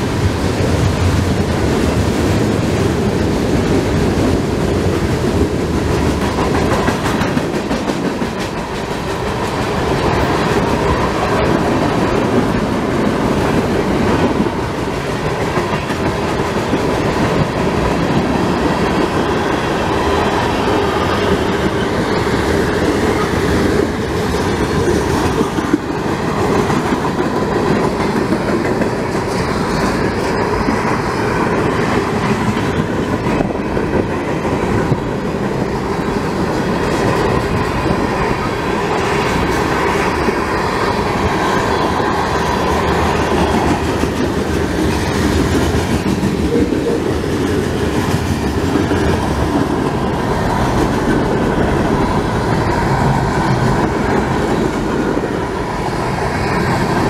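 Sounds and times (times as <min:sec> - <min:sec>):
freight train wheels rumbling: 0:00.0 - 0:57.0.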